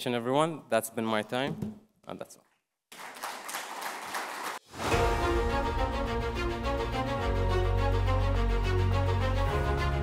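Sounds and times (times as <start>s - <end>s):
audience applauding: 2.9s - 4.6s
music: 4.6s - 10.0s.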